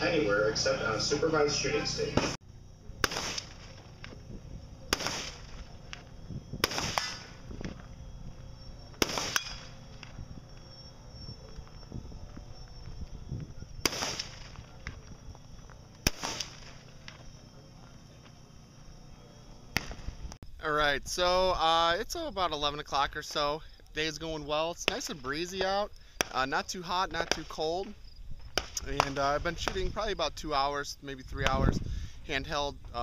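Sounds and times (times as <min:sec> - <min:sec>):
distant gunshots with echo: 0:03.0 - 0:04.1, 0:04.8 - 0:07.5, 0:08.9 - 0:10.1, 0:13.8 - 0:15.0, 0:16.0 - 0:17.0.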